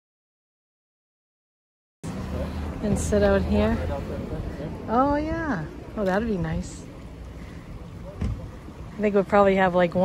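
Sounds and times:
low thump: 8.2 - 8.5.

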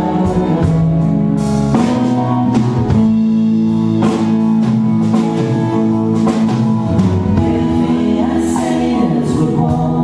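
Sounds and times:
acoustic guitar: 0.0 - 10.0
light drums: 0.0 - 10.0.

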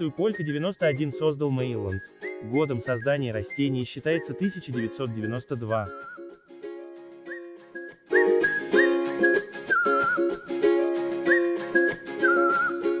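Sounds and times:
whistled tune: 0.0 - 6.6, 7.2 - 13.0
plucked strings: 0.0 - 13.0.

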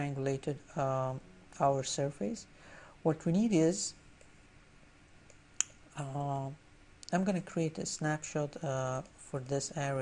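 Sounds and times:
quiet room hiss: 0.0 - 10.0.

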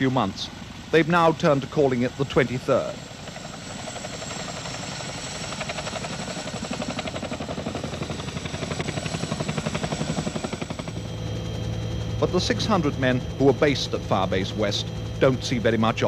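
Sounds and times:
helicopter rotors beating: 0.0 - 16.0.

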